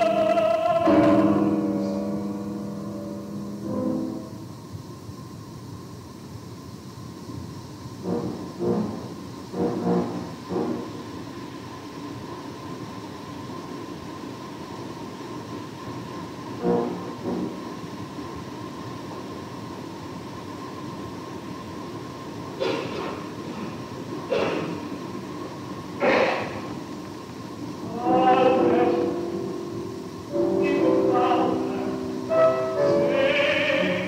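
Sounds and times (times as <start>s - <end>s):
constant hum: 0.0s - 34.0s
recording hiss: 0.0s - 34.0s.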